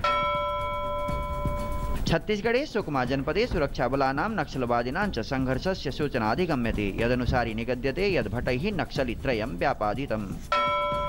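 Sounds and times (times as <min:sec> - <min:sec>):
bell-like chime ringing: 0:00.0 - 0:02.0, 0:10.5 - 0:11.0.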